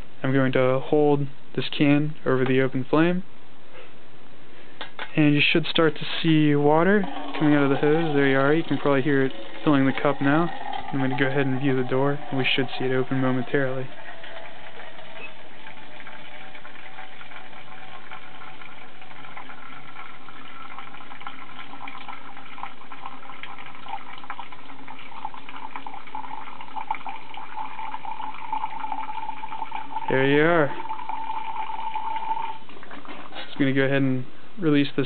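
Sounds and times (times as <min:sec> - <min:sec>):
water running into a cup: 0:05.4 - 0:33.7.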